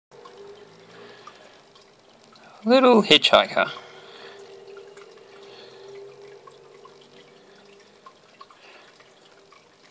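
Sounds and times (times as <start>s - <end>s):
water trickling: 0.1s - 9.9s.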